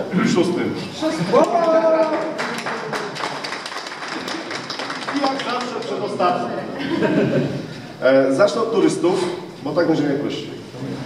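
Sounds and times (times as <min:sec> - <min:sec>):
crowd in a large room: 0:00.0 - 0:11.0.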